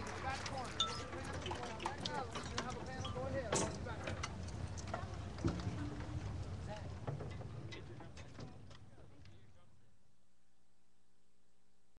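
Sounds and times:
percussion equipment clicks and knocks: 0.0 - 9.4.

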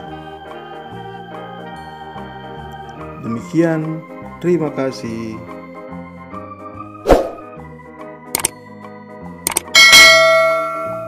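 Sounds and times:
electronic organ music: 0.0 - 11.0
quick double click: 9.5 - 9.7
bright bell ding: 9.7 - 11.0.

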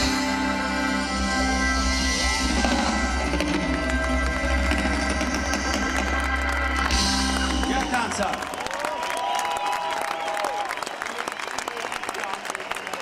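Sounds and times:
drum and cymbal rolls: 0.0 - 8.3
live band playing: 0.0 - 8.9.

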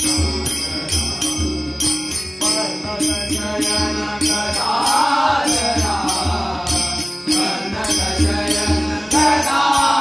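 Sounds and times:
tabla drumming: 0.0 - 10.0
men chanting: 2.5 - 10.0.

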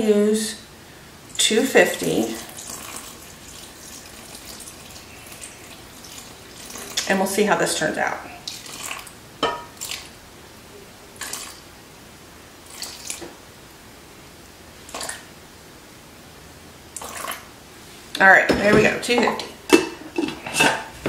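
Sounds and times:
water splashing into flour: 2.0 - 7.1, 8.4 - 9.1, 9.8 - 10.1, 11.2 - 11.6, 12.6 - 13.3, 14.9 - 15.3.

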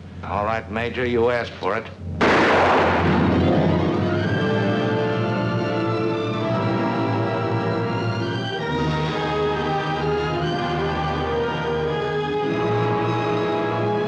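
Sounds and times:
gunshot: 2.2 - 3.7
orchestral film music: 2.8 - 14.0.

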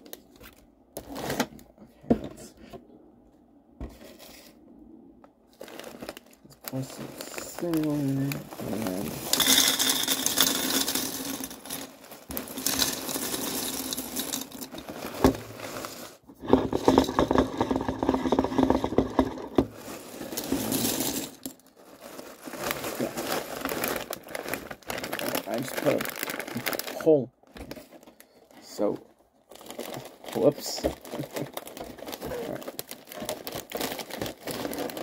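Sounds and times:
plastic bag crinkling: 5.5 - 35.0
cereal flakes rattling into bowl: 5.6 - 27.0, 29.6 - 35.0.

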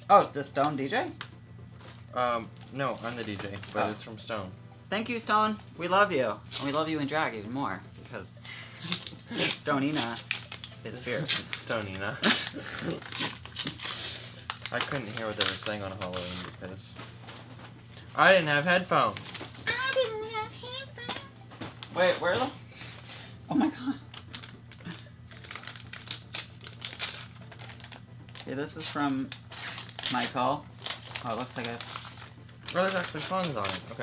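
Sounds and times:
packaging crinkling and tearing: 0.6 - 4.0, 8.8 - 16.7, 24.1 - 34.0
person laughing: 12.1 - 13.1.

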